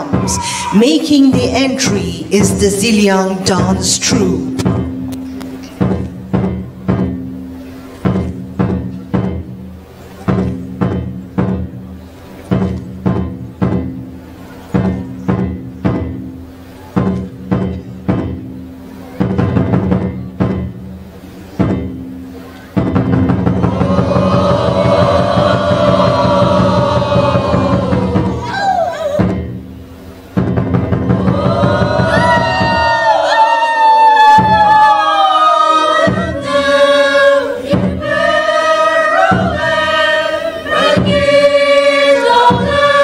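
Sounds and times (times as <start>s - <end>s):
drum steady beat: 0.0s - 11.9s, 22.8s - 35.3s, 35.9s - 43.0s
group of voices singing loudly: 23.6s - 28.8s, 31.1s - 43.0s.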